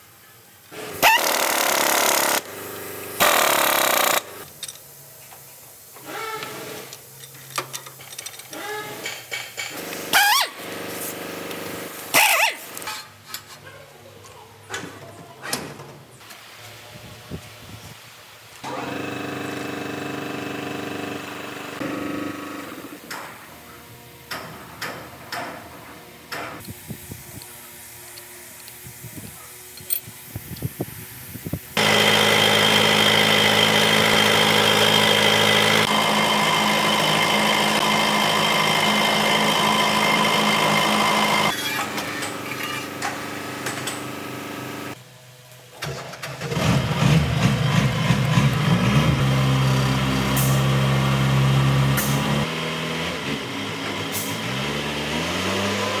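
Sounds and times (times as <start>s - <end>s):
diesel engine revving: 31.8s - 41.5s, 46.4s - 56.0s.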